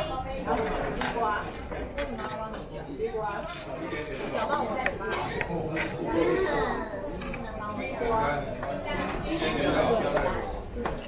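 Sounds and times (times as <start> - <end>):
people talking: 0.0 - 11.0
dishes and utensils clinking: 0.3 - 6.0.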